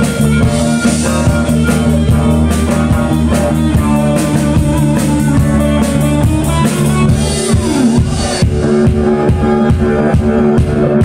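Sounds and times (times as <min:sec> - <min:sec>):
rock band playing instrumental: 0:00.0 - 0:11.0.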